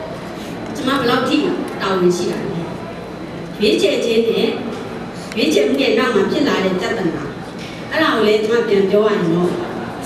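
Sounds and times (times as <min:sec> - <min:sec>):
woman lecturing: 0:00.8 - 0:02.7, 0:03.6 - 0:04.7, 0:05.3 - 0:09.7.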